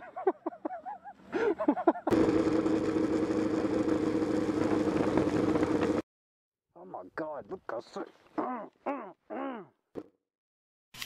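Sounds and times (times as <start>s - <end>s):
motorcycle engine humming: 1.8s - 6.0s.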